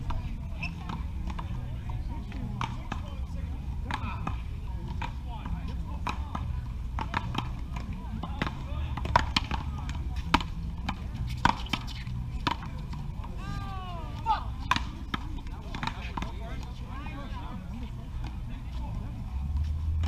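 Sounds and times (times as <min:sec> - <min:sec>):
paddle striking ball: 0:06.0 - 0:12.8
player calling out: 0:13.4 - 0:14.5.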